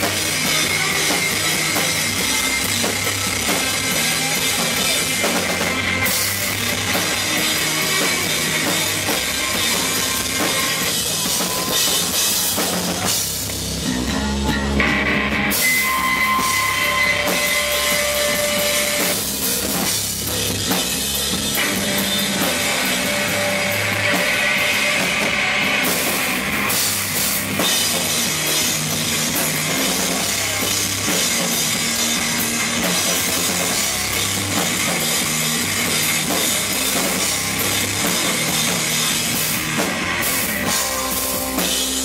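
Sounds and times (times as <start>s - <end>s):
drum kit: 0.0s - 42.0s
electric bass: 0.0s - 42.0s
electric guitar: 0.0s - 42.0s
rock band playing live: 0.0s - 42.0s
held high guitar notes: 14.0s - 19.3s.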